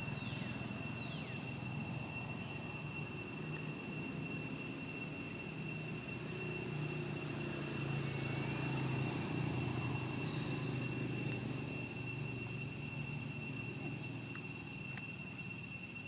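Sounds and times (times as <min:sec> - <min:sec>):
distant engine drone: 0:00.0 - 0:16.0
insects buzzing high-pitched: 0:00.0 - 0:16.0.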